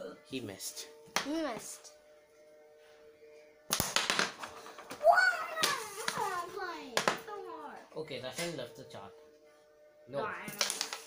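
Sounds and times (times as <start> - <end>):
child calling sing-song: 5.0 - 7.8.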